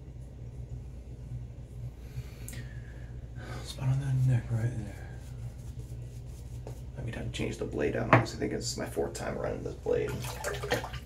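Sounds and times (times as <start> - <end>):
steady low hum: 0.0 - 11.0
shaving brush scratchy strokes: 3.8 - 7.6.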